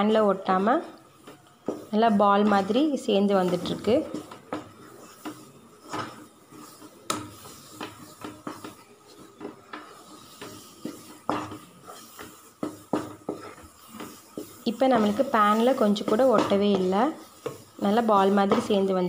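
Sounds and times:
wooden spatula scraping a pan: 0.0s - 19.0s.

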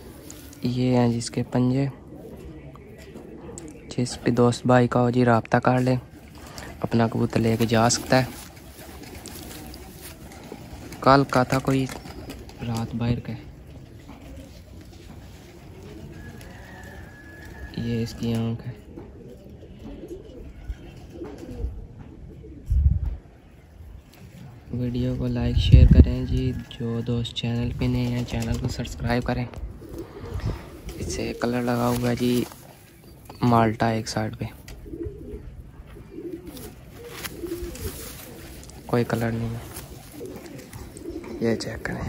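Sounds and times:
pigeons cooing faintly: 0.0s - 42.0s.

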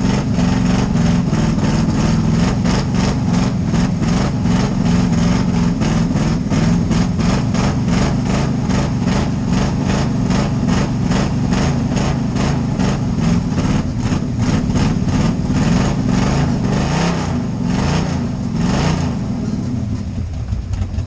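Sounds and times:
race car engine at low revs: 0.0s - 21.0s.

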